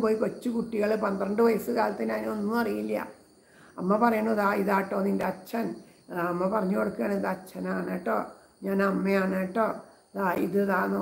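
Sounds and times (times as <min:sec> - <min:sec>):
woman chanting: 0:00.0 - 0:11.0.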